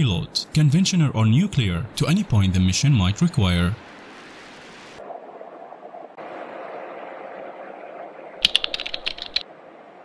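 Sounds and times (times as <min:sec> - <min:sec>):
rapid sharp clicks: 0:08.4 - 0:09.4.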